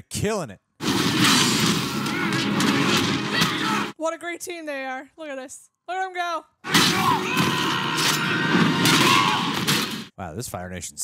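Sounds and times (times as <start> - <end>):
crashes and impacts: 0.8 - 3.9, 6.7 - 10.1.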